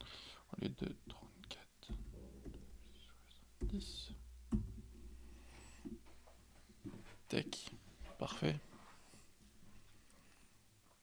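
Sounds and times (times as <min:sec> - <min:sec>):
dull thumps: 0:00.9 - 0:07.1.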